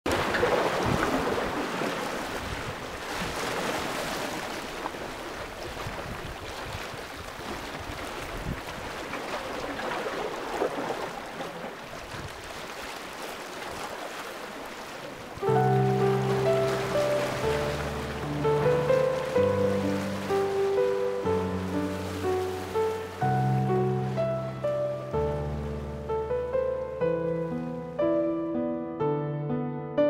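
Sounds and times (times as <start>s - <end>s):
waves washing against rocks: 0.1s - 23.4s
piano chords: 15.4s - 30.0s.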